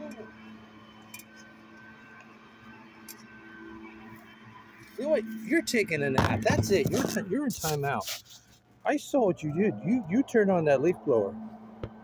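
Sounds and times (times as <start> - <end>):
distant motor drone: 0.0 - 12.0.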